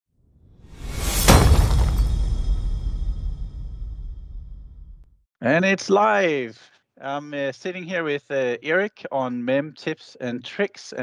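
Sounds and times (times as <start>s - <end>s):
whoosh: 0.5s - 5.1s
glass shatter hit: 0.8s - 3.9s.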